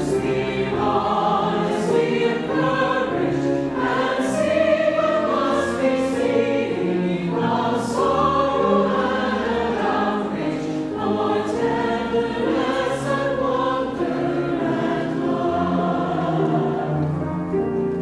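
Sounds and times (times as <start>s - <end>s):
mixed choir singing: 0.0s - 18.0s.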